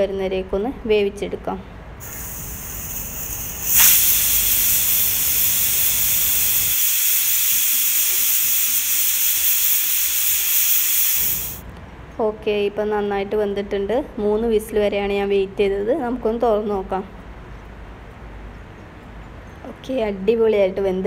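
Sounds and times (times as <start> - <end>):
pressure cooker venting steam: 2.0 - 11.6.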